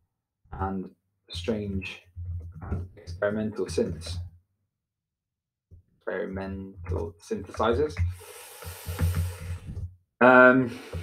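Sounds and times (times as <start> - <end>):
breathy exhale: 8.2 - 9.8.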